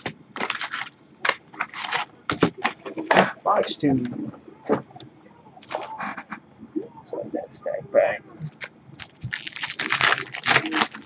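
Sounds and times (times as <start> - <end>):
foil packs crinkling: 0.0 - 2.9, 8.5 - 11.0
cardboard box tearing: 9.3 - 11.0.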